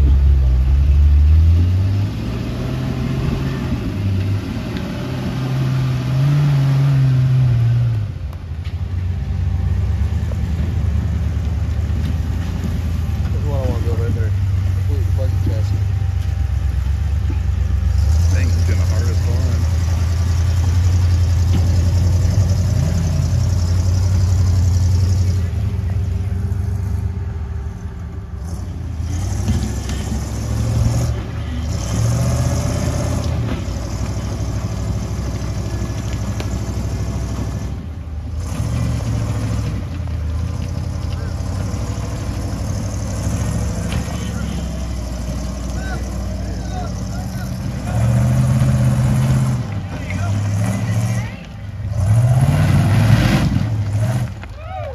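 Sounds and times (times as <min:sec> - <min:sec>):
buggy engine running under load: 0:00.0 - 0:54.9.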